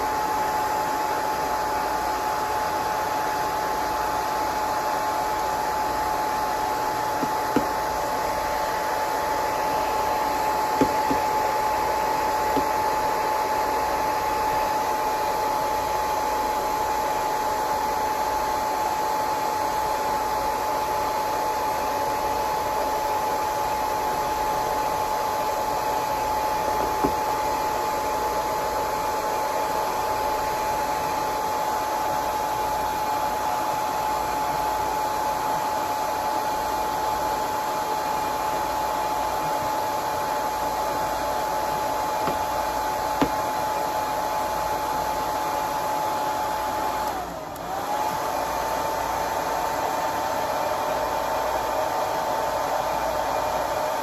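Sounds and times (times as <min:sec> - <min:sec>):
hair dryer running: 0:00.0 - 0:54.0.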